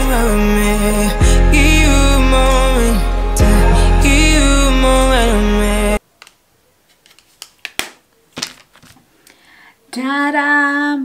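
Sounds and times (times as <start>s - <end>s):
small package clicking and tapping: 7.0s - 9.0s.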